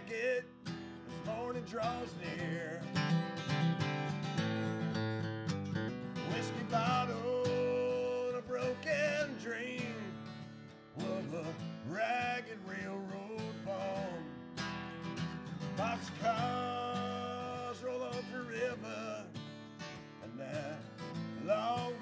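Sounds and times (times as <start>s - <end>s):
man singing: 0.0s - 4.2s, 6.1s - 14.7s, 15.6s - 19.5s, 20.2s - 22.0s
acoustic guitar strumming: 0.0s - 22.0s.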